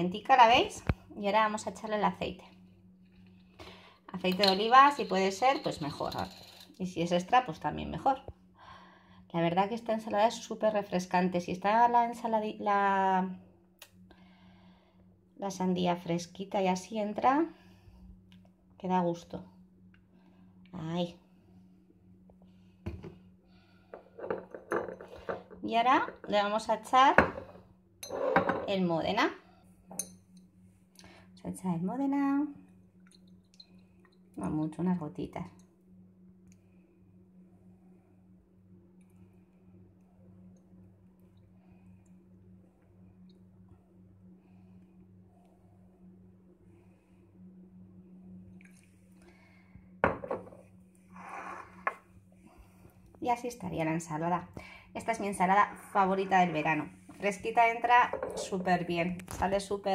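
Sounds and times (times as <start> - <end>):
faint steady hum: 0.0 - 59.9
kitchenware clinks and knocks: 4.3 - 6.8, 24.2 - 25.6, 27.2 - 28.7, 58.0 - 58.6
glass bottle knocking down: 50.0 - 50.6.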